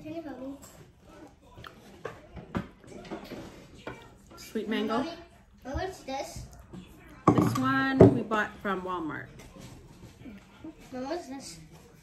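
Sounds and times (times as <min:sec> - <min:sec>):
knocks on wooden table: 0:07.2 - 0:08.3.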